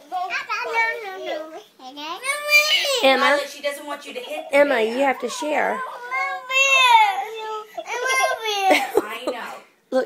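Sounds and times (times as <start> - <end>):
girl crying: 4.8 - 8.9.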